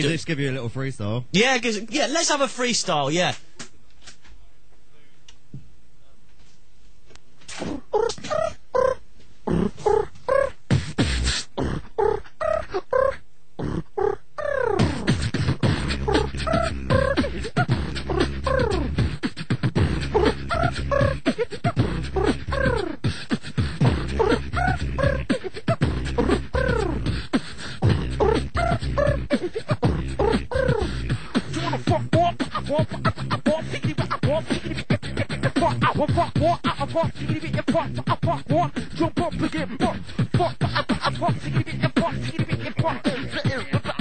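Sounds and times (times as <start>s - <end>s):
beatboxing: 7.5s - 44.0s
deep vocal bass line: 8.8s - 44.0s.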